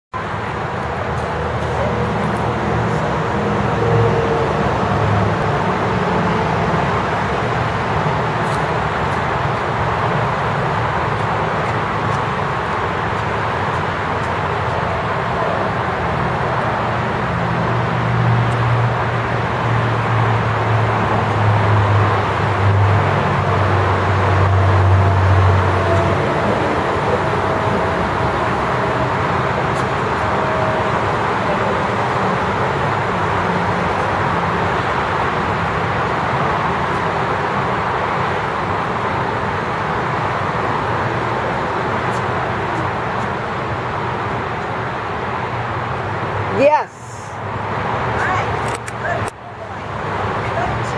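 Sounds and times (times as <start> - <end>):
road traffic noise: 0.1 - 50.9
low engine hum: 0.2 - 50.9.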